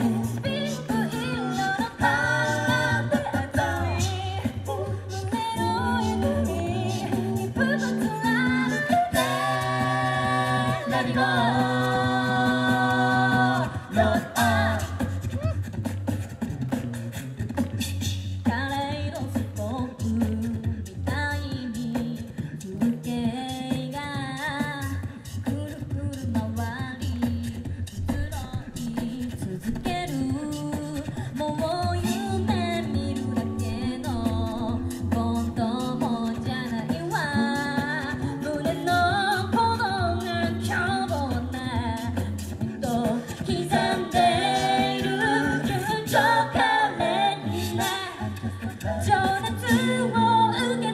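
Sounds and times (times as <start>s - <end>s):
a cappella group singing: 0.0s - 50.9s
beatboxed percussion: 0.0s - 50.9s.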